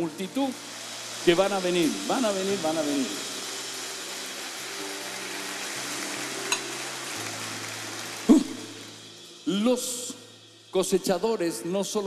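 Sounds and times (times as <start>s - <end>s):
congregation applauding: 0.0s - 9.0s
soft music of held notes: 0.0s - 12.0s.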